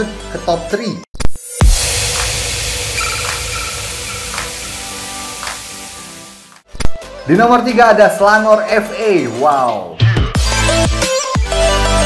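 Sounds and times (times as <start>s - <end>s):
steady synth tones: 1.5s - 6.6s
loud static hiss: 1.6s - 6.6s.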